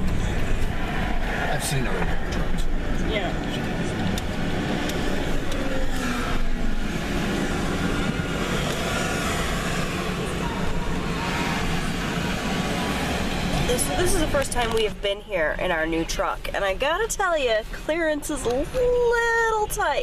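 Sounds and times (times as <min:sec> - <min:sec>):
truck engine and road noise: 0:00.0 - 0:20.0.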